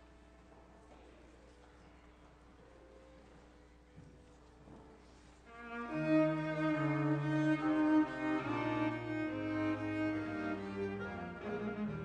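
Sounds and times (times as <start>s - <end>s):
bowed string duet: 5.5s - 12.0s.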